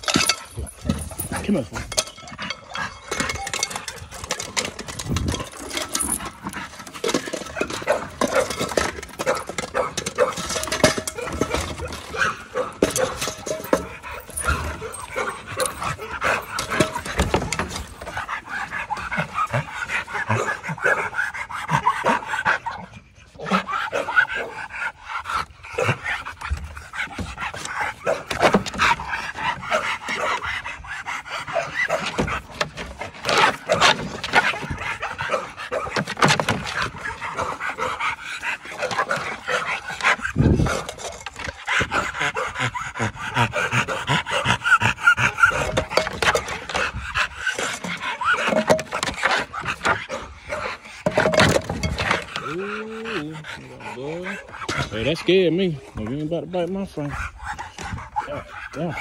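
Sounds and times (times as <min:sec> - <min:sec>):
dog panting: 0:00.0 - 0:59.0.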